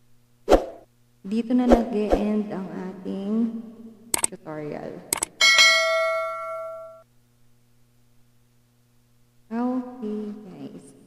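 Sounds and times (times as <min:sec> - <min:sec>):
double mouse click: 0:04.2 - 0:04.4
bell ding: 0:05.4 - 0:07.0.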